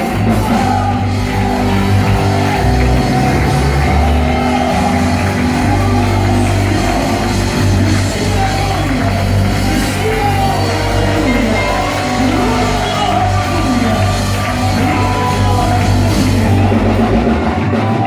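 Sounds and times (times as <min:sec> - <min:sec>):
singing: 0:00.0 - 0:18.0
sustained bass notes: 0:00.0 - 0:18.0
worship band playing: 0:00.0 - 0:18.0.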